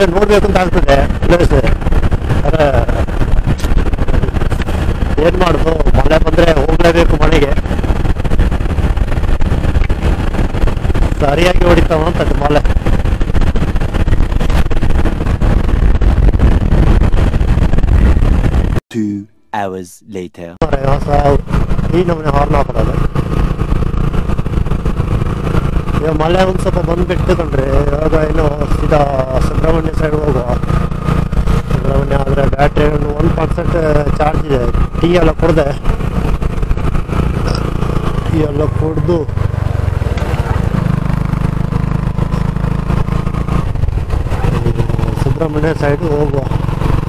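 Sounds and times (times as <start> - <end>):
scooter road and drive noise: 0.0 - 18.8, 20.6 - 47.0
wind buffeting microphone: 0.0 - 18.8, 20.8 - 47.0
motorcycle engine rumbling: 0.0 - 47.0.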